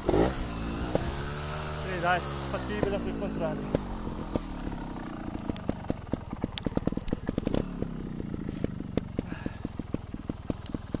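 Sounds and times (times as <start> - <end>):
motorcycle engine at low revs: 0.0 - 11.0
irregular clicks and knocks: 5.4 - 7.9.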